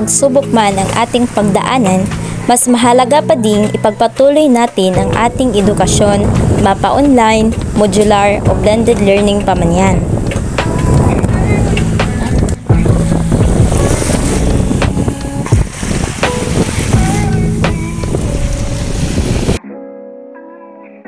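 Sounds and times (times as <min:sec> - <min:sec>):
waves washing onto beach: 0:00.3 - 0:02.7, 0:05.2 - 0:19.6
wind rumbling on microphone: 0:04.9 - 0:19.6.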